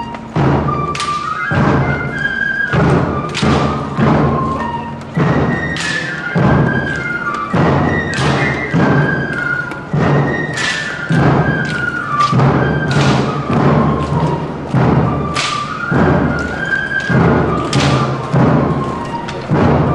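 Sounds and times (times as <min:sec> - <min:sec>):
heavy drum beats: 0:00.0 - 0:19.9.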